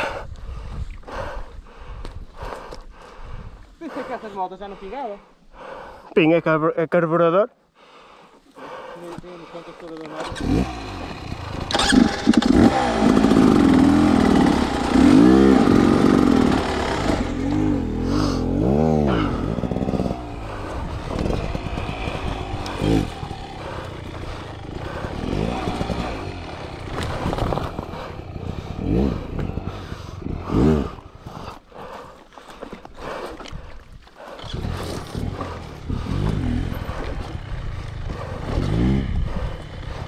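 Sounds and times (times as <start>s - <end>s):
motorcycle engine revving: 10.1s - 31.2s, 34.2s - 40.0s
motorcycle throttle blips: 10.2s - 31.0s, 34.4s - 40.0s.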